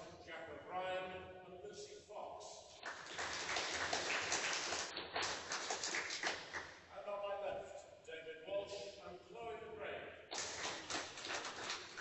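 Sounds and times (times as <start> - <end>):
audience applauding: 2.8 - 6.7, 10.3 - 12.0.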